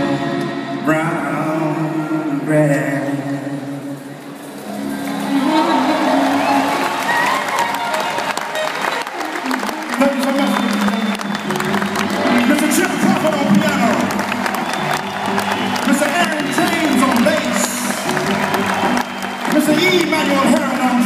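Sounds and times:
audience applauding and cheering: 4.0 - 21.0
jazz band playing: 4.3 - 21.0.

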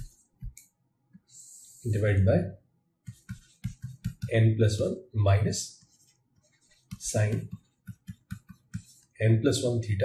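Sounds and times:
person speaking: 1.4 - 2.5, 3.1 - 10.0.

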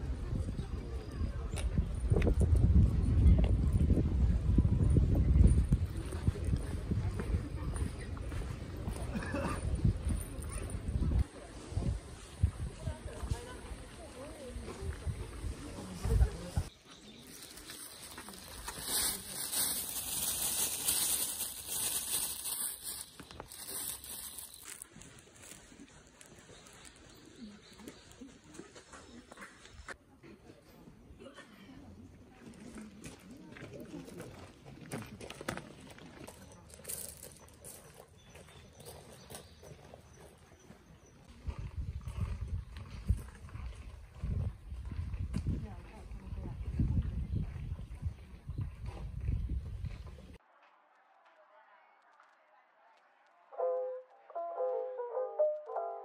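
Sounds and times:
wind rumbling on microphone: 0.0 - 16.7, 41.3 - 50.4
plastic bag crinkling: 17.4 - 25.5.

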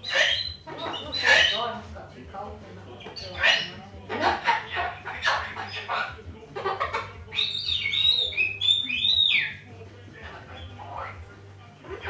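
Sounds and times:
cockatoo whistling: 0.0 - 1.6, 7.3 - 9.6.

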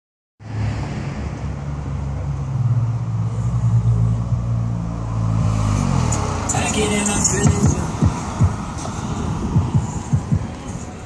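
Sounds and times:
car engine low rumble: 0.5 - 11.0.

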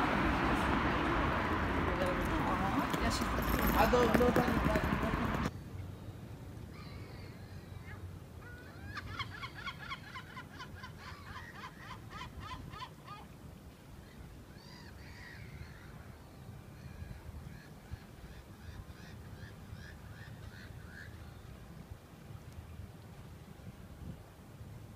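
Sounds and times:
gull calling: 6.7 - 13.3.

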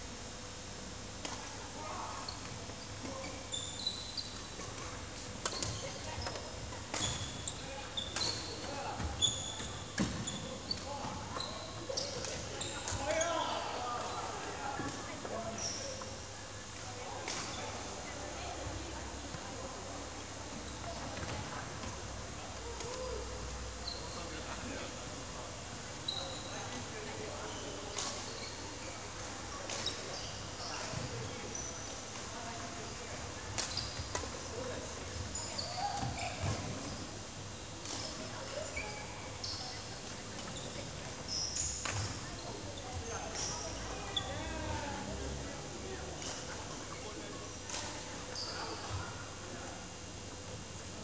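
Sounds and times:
shoe squeak on wooden floor: 2.3 - 4.5, 7.0 - 13.3, 35.3 - 37.1, 38.6 - 39.8.

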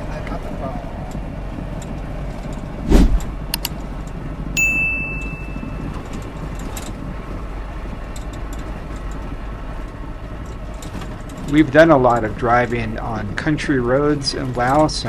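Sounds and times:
vehicle cabin rumble: 0.0 - 15.0
small rattling clicks: 1.1 - 4.2, 5.2 - 7.1, 8.0 - 12.9
short electronic tone: 4.6 - 5.9.

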